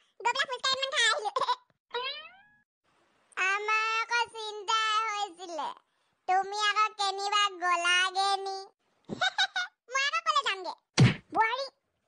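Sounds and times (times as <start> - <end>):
high-pitched cartoon voice: 0.2 - 2.4.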